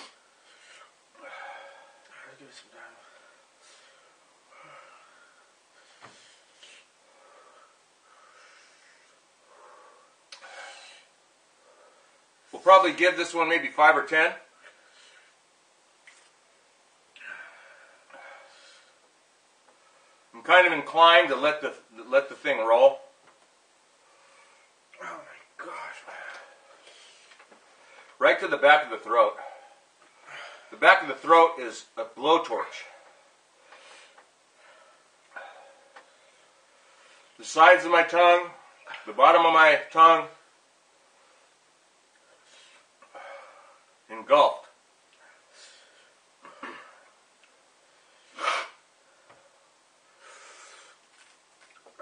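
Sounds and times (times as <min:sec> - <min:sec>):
man breathing hard: 0:00.0 - 0:12.3, 0:47.9 - 0:51.0.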